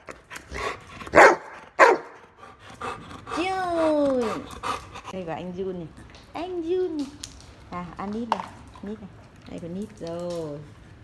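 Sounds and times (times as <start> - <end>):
dog barking: 1.1 - 2.2.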